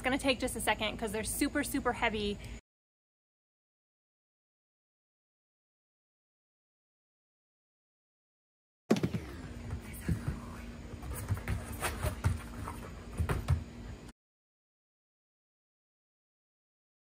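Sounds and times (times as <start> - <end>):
faint steady hum: 0.0 - 2.6, 8.9 - 14.1.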